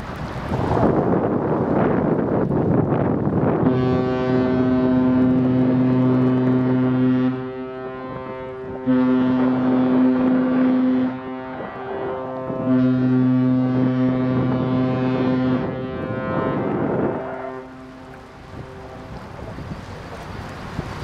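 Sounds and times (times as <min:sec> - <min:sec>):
deep ship horn blasts: 0:03.4 - 0:19.6.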